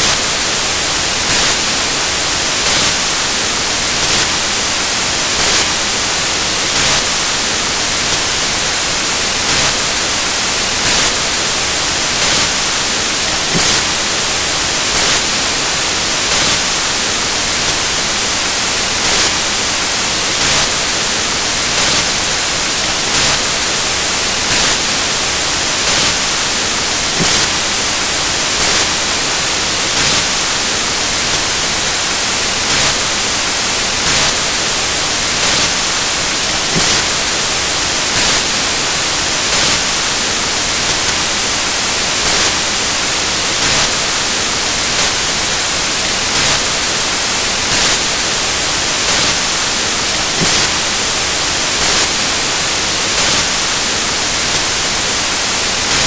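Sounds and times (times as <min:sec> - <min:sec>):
loud static hiss: 0:00.0 - 0:56.0.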